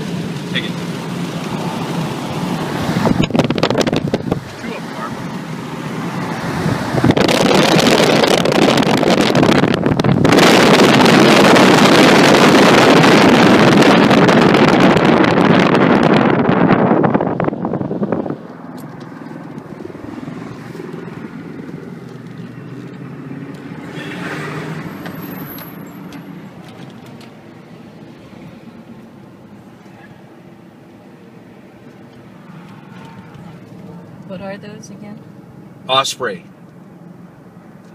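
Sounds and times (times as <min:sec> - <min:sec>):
car low hum: 0:00.0 - 0:37.9
wind and road noise: 0:00.0 - 0:37.9.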